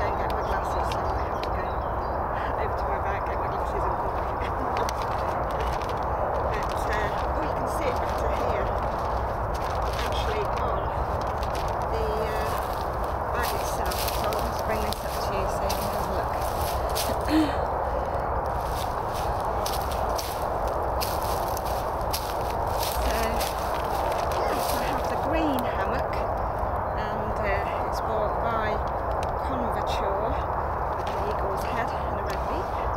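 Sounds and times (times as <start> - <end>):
steady outdoor hiss: 0.0 - 32.9
plastic bag crinkling: 3.6 - 25.7.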